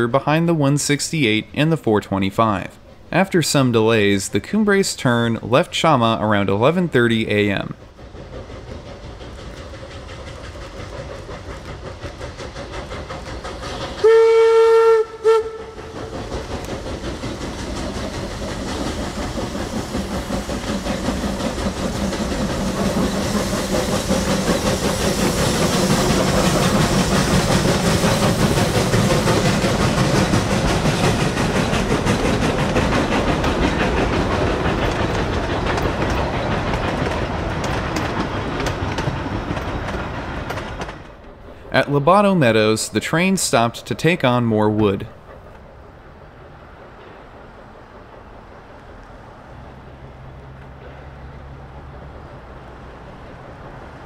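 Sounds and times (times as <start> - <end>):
coaches rolling on rails: 0.0 - 54.0
steam locomotive exhaust: 0.0 - 54.0
steam locomotive whistle: 14.0 - 15.8.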